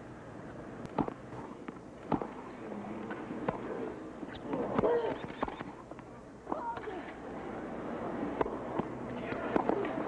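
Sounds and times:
low crowd hum: 0.0 - 10.0.

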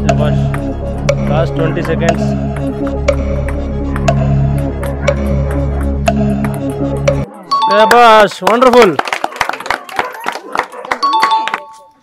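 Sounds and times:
hand claps: 7.9 - 11.9.

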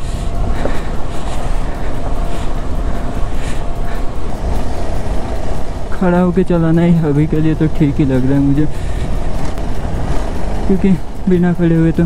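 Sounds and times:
motorcycle engine running: 0.0 - 12.0
wind and tyre rumble: 0.0 - 12.0.

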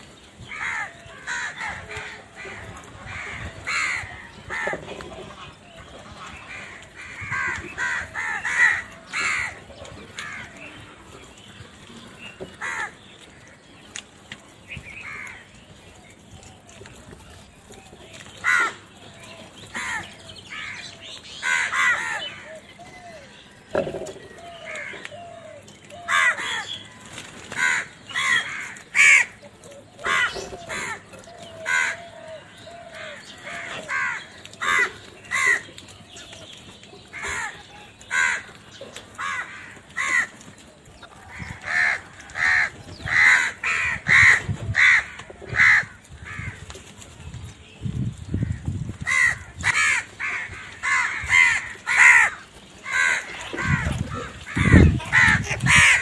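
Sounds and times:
crows cawing: 0.4 - 13.7, 14.9 - 15.6, 18.1 - 36.2, 37.0 - 46.9, 48.4 - 56.0.

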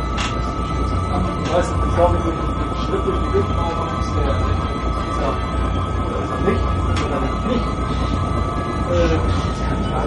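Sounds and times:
constant high whine: 0.0 - 10.0
steady low rumble: 0.0 - 10.0.

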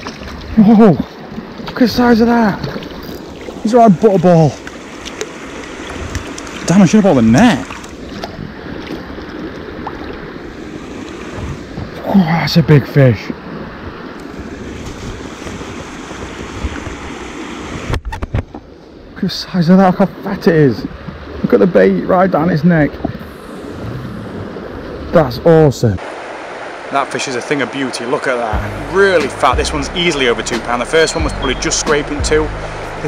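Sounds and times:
wind buffeting microphone: 0.0 - 12.1, 13.3 - 18.8
river water flowing: 0.0 - 17.9, 18.5 - 33.0.

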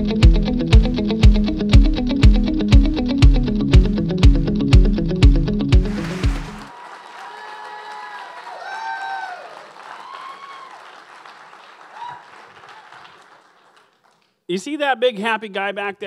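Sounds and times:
intro music with steady beat: 0.0 - 6.7
audience applauding: 5.9 - 14.3
people whooping: 6.7 - 11.0, 11.9 - 13.2.

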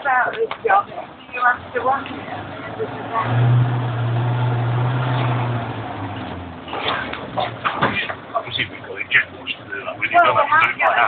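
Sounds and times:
vehicle rumbling on track: 0.0 - 11.0.

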